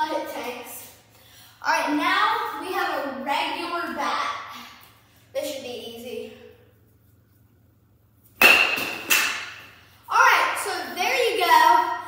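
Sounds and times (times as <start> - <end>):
bat cracking a baseball: 8.4 - 9.7.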